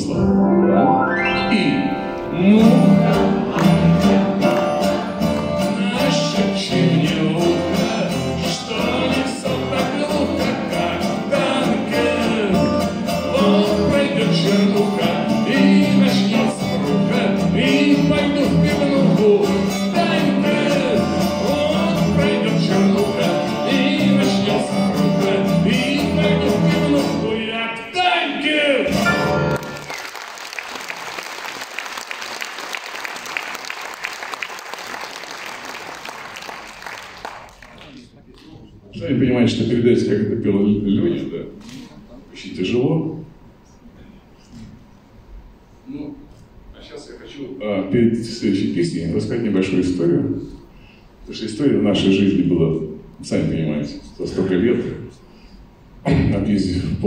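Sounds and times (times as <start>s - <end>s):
acoustic guitar and piano song: 0.0s - 27.6s, 28.9s - 29.9s
audience applause: 29.5s - 38.1s.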